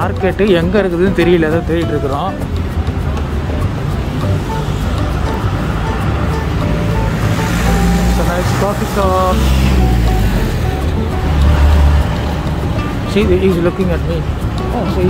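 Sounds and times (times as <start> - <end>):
light background music: 0.0 - 15.0
traffic passing: 0.0 - 15.0
person speaking: 7.6 - 10.9.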